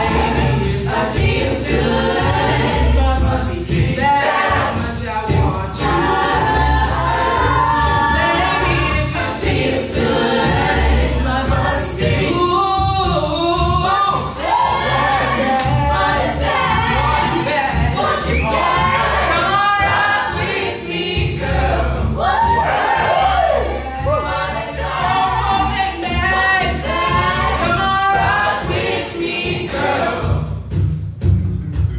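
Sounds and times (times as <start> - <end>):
female lead singing: 0.0 - 30.0
beatboxed vocal percussion: 0.0 - 31.9
sung backing harmonies: 0.0 - 31.9
sung bass line: 0.0 - 31.9.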